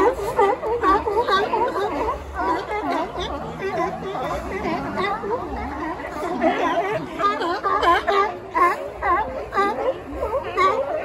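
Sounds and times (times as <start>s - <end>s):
sea lions barking: 0.0s - 11.0s.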